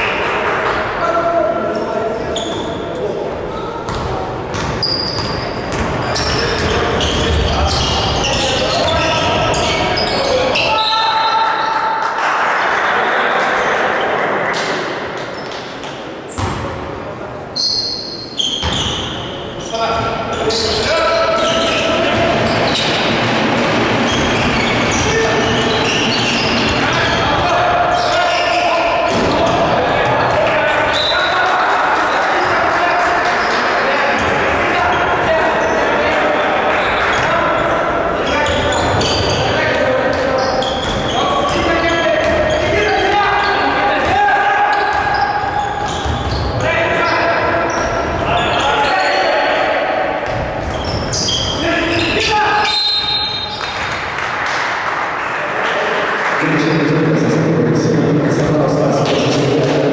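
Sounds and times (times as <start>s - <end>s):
voices talking and calling: 17.5s - 53.9s.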